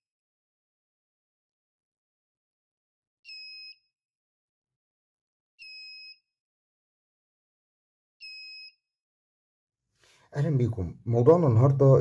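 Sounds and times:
shrill buzzer beeps: 3.2 - 3.9, 5.6 - 6.3, 8.2 - 8.9.

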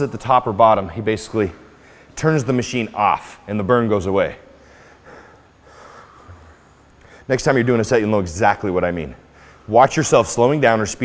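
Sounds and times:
man breathing heavily: 1.7 - 2.2, 4.5 - 7.3, 9.3 - 9.7.

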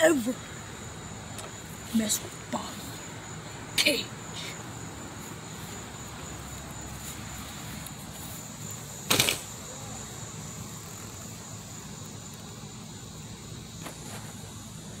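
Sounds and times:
crickets chirring: 0.0 - 15.0.

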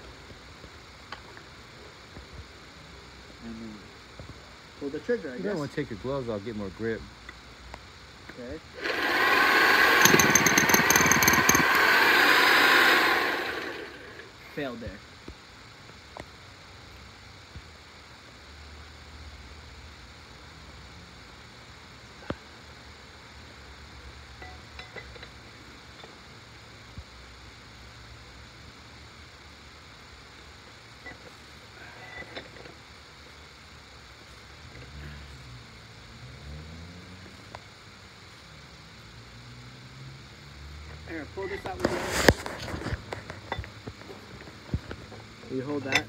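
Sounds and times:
metal chisel bit clicking: 9.8 - 12.1.

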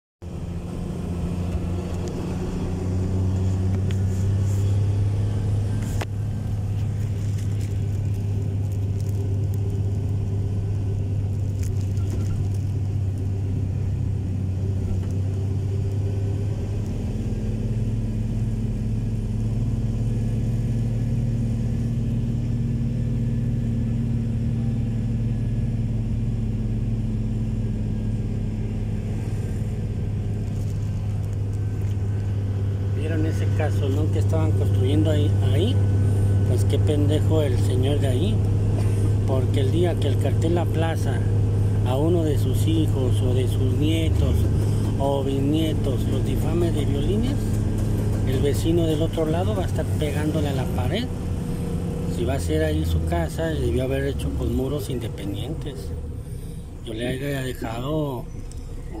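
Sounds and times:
vehicle engine and road noise: 0.2 - 59.0.

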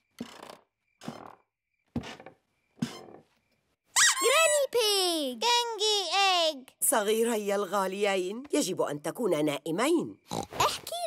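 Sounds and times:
cartoon child calling out: 3.9 - 6.6.

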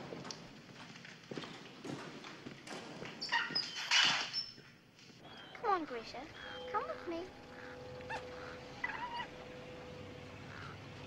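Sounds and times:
fox whining yelps: 6.3 - 7.1, 7.7 - 9.4.

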